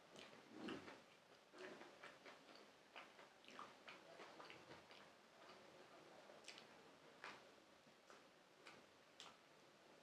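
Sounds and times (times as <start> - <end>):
soft mouth clicks chewing: 0.1 - 5.7, 6.4 - 7.4, 8.0 - 9.4.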